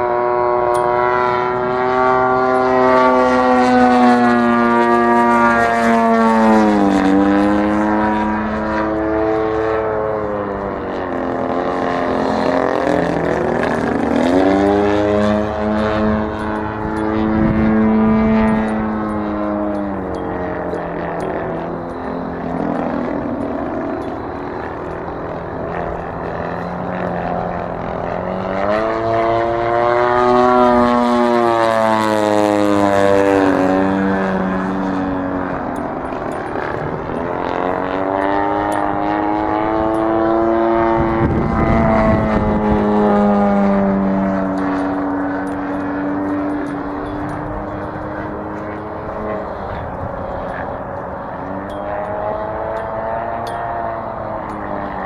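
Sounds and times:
model plane engine buzzing: 0.0s - 55.0s.

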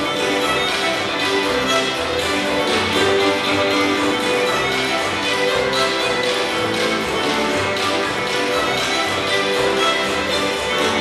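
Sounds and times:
double bass: 0.0s - 11.0s
lead fiddle: 0.0s - 11.0s
massed fiddles: 0.0s - 11.0s
piano: 0.0s - 11.0s
steady tapping beat: 0.0s - 11.0s.

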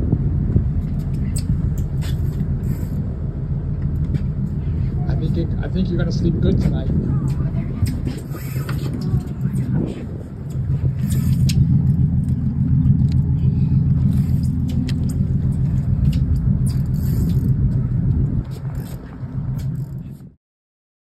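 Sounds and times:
boat engine idling: 0.0s - 20.2s.

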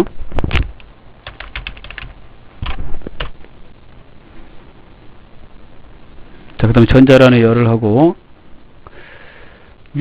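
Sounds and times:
man breathing in through nose: 8.8s - 9.8s.

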